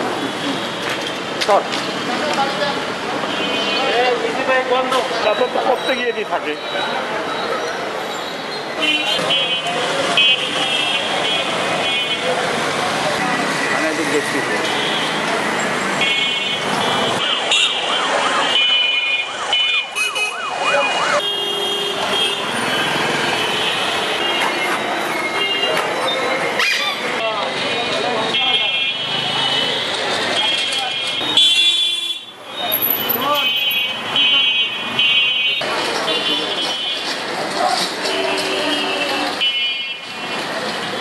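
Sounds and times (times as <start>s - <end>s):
street traffic: 0.0s - 41.0s.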